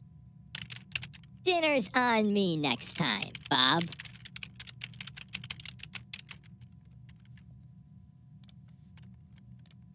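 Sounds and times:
steady low hum: 0:00.0 - 0:09.9
typing on computer keyboard: 0:00.5 - 0:01.3, 0:03.3 - 0:07.4.

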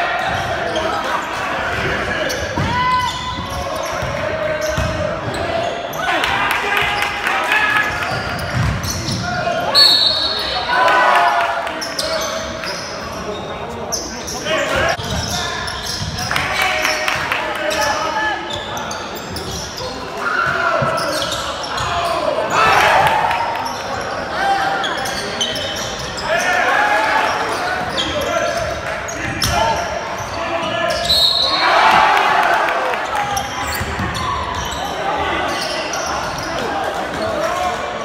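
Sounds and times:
sneakers squeaking: 0:00.0 - 0:10.8, 0:11.6 - 0:38.0.

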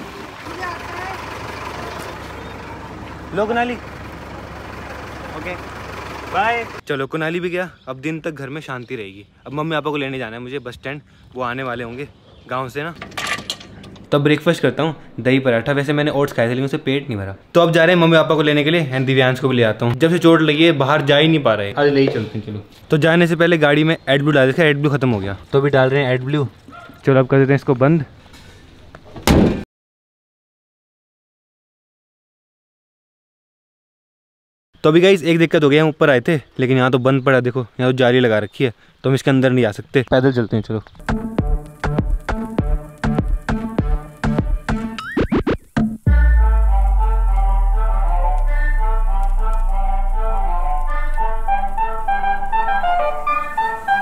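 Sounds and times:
bus engine rumbling: 0:00.0 - 0:06.8, 0:46.7 - 0:54.0
car bonnet slammed shut: 0:29.2 - 0:29.6.

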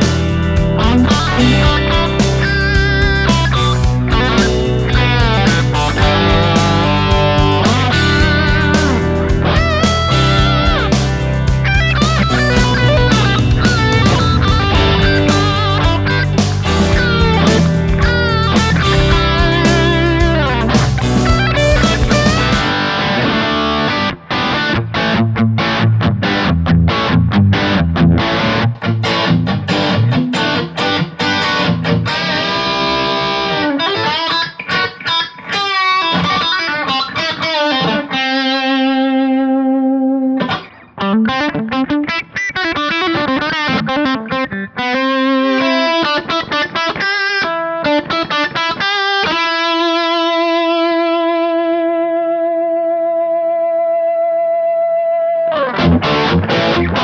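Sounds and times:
bass and drums backing track: 0:00.0 - 0:22.9
overdriven electric guitar lead: 0:00.0 - 0:57.0.

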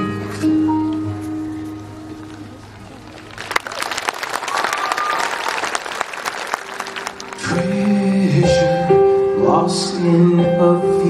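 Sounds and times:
music: 0:00.0 - 0:03.4, 0:06.5 - 0:11.0
audience applauding: 0:02.2 - 0:08.0.

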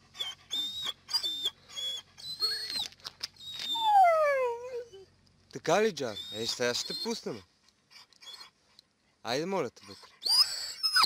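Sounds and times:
dog whining: 0:00.0 - 0:05.1, 0:06.0 - 0:08.6, 0:09.8 - 0:11.0.

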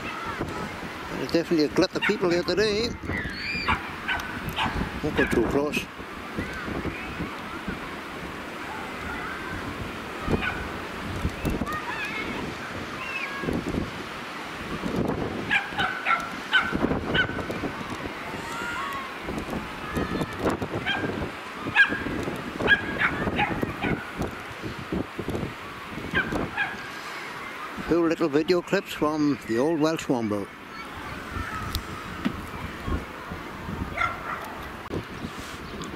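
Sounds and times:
gulls calling: 0:00.0 - 0:24.9, 0:25.5 - 0:34.9.

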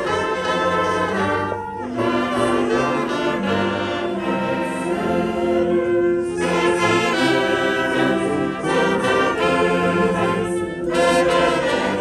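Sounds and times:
military wind band playing: 0:00.0 - 0:12.0.

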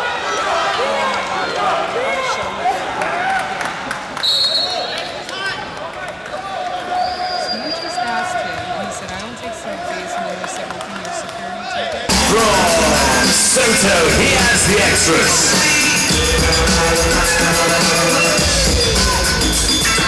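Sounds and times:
arena crowd chatter: 0:00.0 - 0:20.0
loud arena music: 0:12.1 - 0:20.0.

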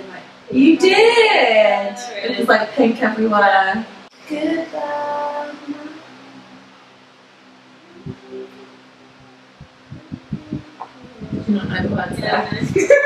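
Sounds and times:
electric fan humming: 0:00.0 - 0:13.0
voice holding a note: 0:07.8 - 0:08.8, 0:09.6 - 0:12.1.

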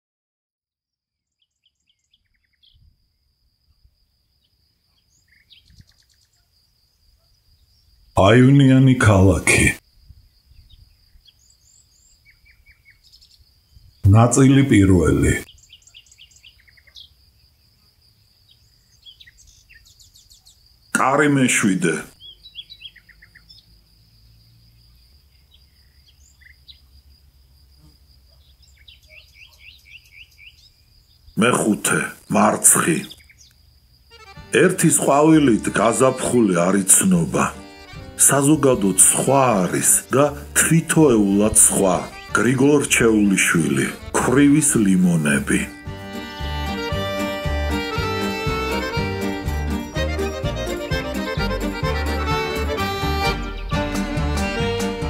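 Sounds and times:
faint birdsong: 0:00.9 - 0:53.9.

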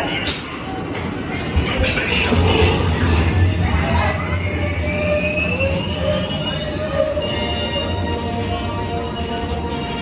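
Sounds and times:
roller coaster rumbling on track: 0:00.0 - 0:10.0.

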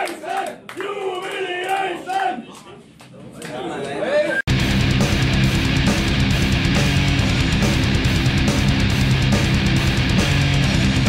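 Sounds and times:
crowd chanting in unison: 0:00.0 - 0:02.5.

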